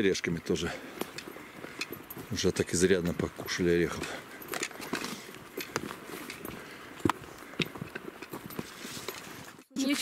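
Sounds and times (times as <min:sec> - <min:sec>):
footsteps on forest trail: 0:00.0 - 0:10.0.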